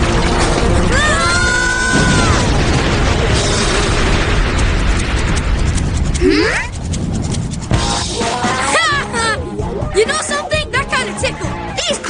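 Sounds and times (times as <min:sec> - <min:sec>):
cartoon explosion rumble: 0:00.0 - 0:08.3.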